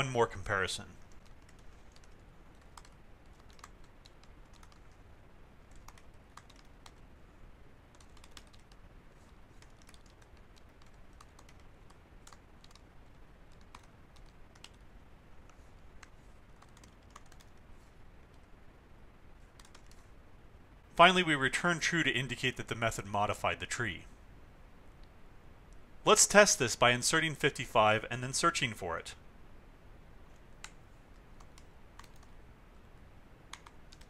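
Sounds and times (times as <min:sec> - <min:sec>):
low steady hiss: 0:00.0 - 0:34.0
typing on computer keyboard: 0:01.0 - 0:05.0, 0:05.7 - 0:07.0, 0:07.9 - 0:14.8, 0:15.5 - 0:17.6, 0:19.6 - 0:20.0, 0:31.4 - 0:32.3, 0:33.5 - 0:34.0.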